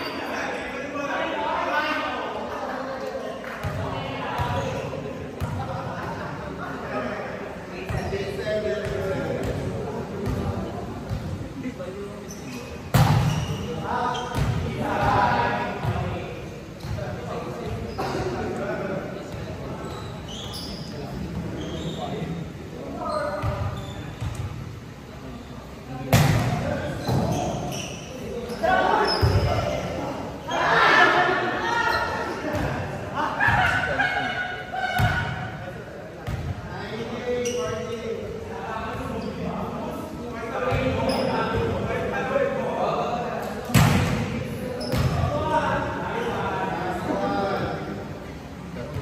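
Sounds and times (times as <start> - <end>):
players talking and calling out: 0.0 - 49.0
players calling out: 26.6 - 35.9
volleyball hits: 43.7 - 45.2.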